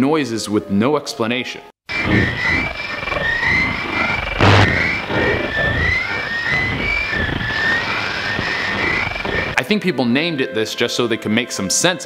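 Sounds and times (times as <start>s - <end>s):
radio static hiss: 1.9s - 9.6s
sudden burst of noise: 1.9s - 9.6s
warbling gliding tones: 1.9s - 9.6s.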